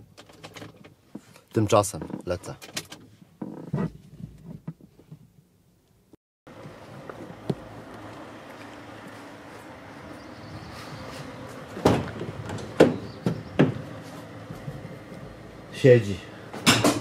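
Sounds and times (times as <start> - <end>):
van door handle and latch clunks: 11.7 - 14.0.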